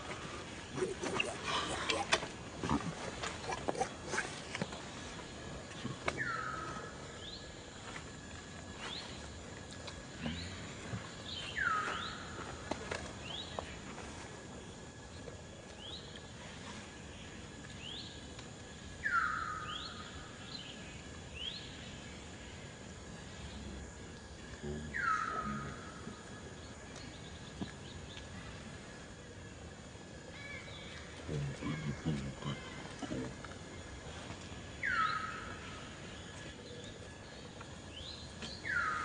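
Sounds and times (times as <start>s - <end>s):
faint insect hum: 0.0s - 39.0s
faint chirps: 0.3s - 12.6s, 13.2s - 29.5s, 30.2s - 39.0s.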